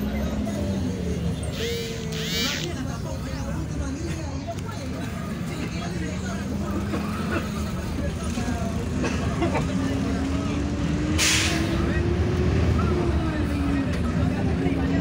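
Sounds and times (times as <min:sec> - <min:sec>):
bus engine running: 0:00.0 - 0:15.0.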